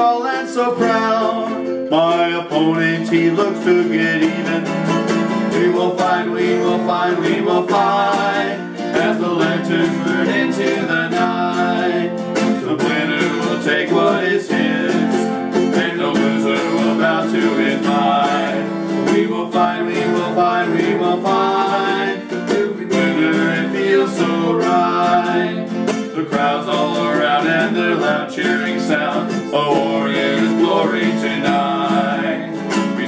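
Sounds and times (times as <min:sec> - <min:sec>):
acoustic guitar strumming: 0:00.0 - 0:33.0
men singing: 0:00.0 - 0:33.0
ukulele strumming: 0:00.0 - 0:33.0.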